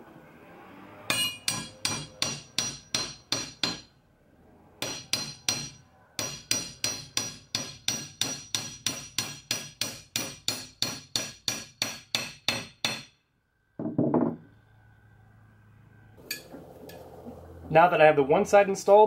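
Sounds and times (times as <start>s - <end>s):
hammer tapping on metal: 1.1s - 3.9s, 4.8s - 13.1s.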